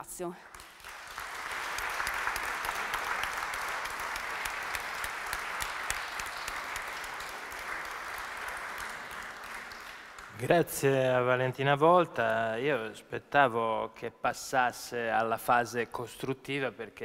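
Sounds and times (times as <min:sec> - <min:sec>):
audience applauding: 0:00.4 - 0:11.3.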